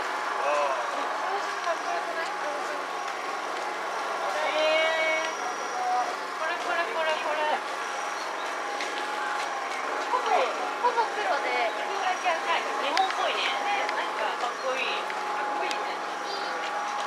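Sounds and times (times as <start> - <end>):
crowd chatter: 0.0 - 17.0.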